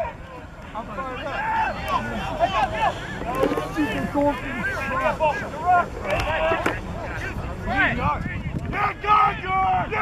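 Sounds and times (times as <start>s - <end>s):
wind rumbling on microphone: 6.8s - 10.0s.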